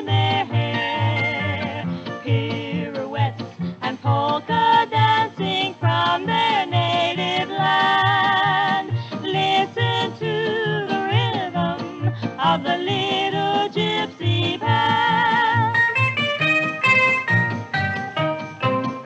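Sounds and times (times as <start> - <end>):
polka record playing: 0.0 - 19.0.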